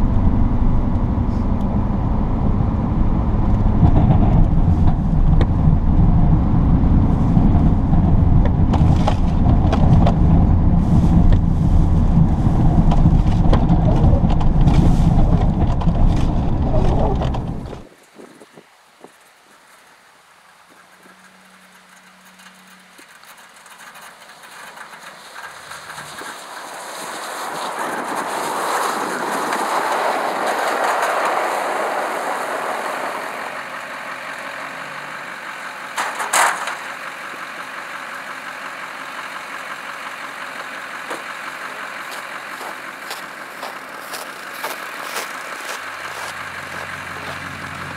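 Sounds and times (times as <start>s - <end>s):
diesel engine inside cab: 0.0s - 17.9s, 20.4s - 47.9s
truck rushing noise: 0.0s - 18.0s, 20.3s - 47.9s
low engine hum: 0.0s - 47.9s.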